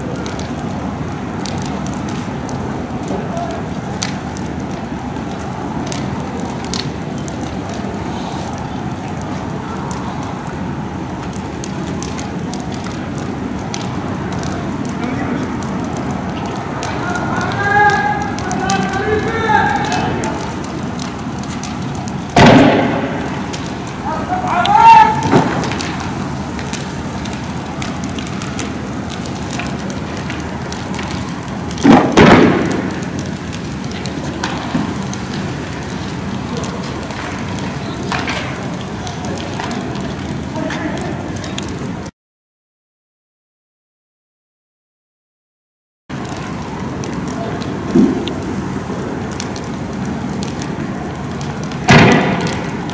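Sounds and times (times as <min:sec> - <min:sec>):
fire crackling: 0:00.0 - 0:42.1, 0:46.1 - 0:52.9
people shouting: 0:17.0 - 0:20.4, 0:24.0 - 0:25.4
loud bangs: 0:22.3 - 0:23.6, 0:24.3 - 0:26.2, 0:31.8 - 0:33.4, 0:51.9 - 0:52.8.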